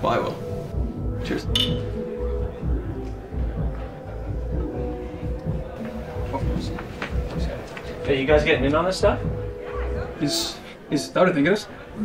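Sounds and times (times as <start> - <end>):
music with deep bass: 0.0 - 10.5
glass bottles clinking: 1.5 - 1.8.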